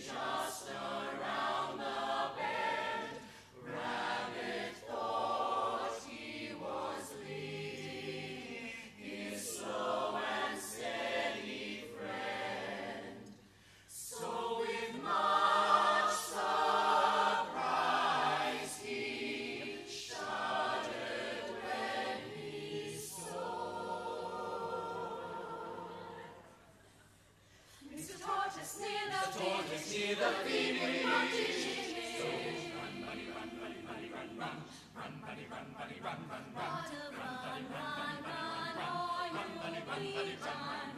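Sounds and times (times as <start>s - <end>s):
a cappella group singing: 0.0s - 40.9s.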